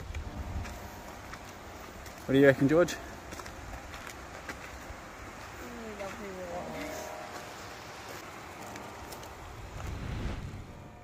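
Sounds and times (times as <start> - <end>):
footsteps on dirt and gravel: 0.0 - 10.7.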